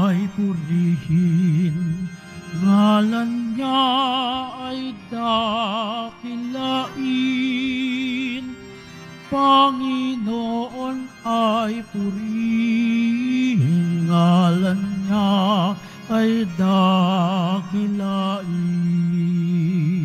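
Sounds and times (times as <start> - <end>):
person singing a hymn: 0.0 - 20.0.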